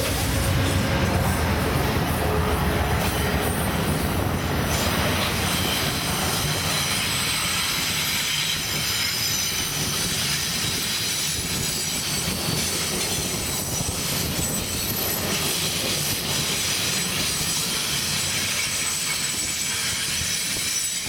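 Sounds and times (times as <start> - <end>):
train wheels rumbling and clattering: 0.0 - 21.0
high-pitched wheel squeals: 5.2 - 12.6.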